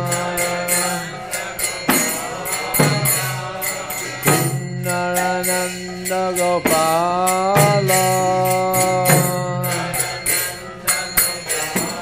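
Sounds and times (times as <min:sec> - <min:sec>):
hand cymbals striking: 0:00.0 - 0:12.0
person singing: 0:00.0 - 0:12.0.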